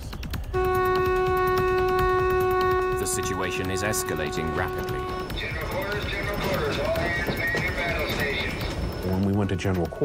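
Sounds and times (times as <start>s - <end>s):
background music: 0.0s - 10.0s
hurried footsteps on metal: 0.2s - 10.0s.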